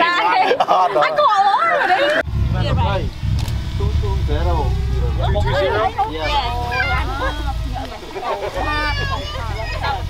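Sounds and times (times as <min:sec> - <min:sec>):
people talking: 0:00.0 - 0:10.0
low steady rumble: 0:02.2 - 0:10.0.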